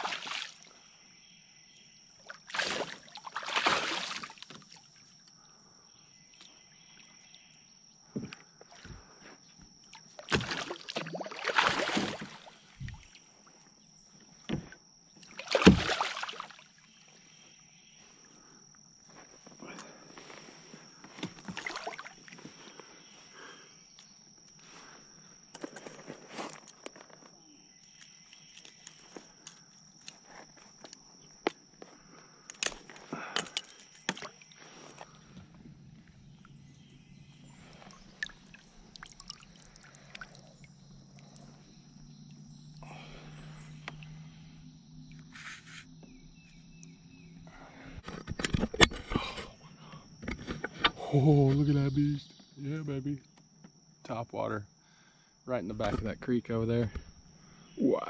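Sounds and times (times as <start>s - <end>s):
insect buzz: 0.0s - 58.0s
fish splashing: 2.4s - 4.5s, 10.2s - 13.1s, 15.4s - 16.6s, 21.4s - 22.2s, 37.7s - 41.5s.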